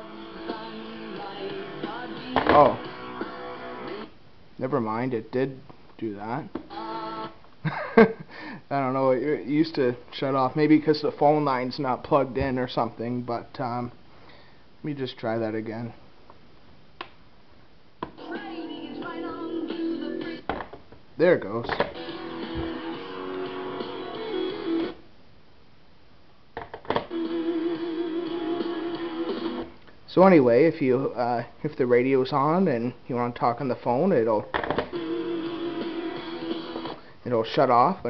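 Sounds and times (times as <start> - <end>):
music from small speaker: 0.0 - 4.1, 18.1 - 20.5, 21.8 - 25.0, 27.1 - 29.7, 34.9 - 37.0.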